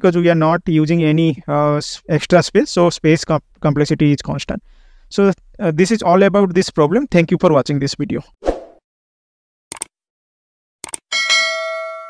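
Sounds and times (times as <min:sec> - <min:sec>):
notification bell ding: 0:11.1 - 0:12.0.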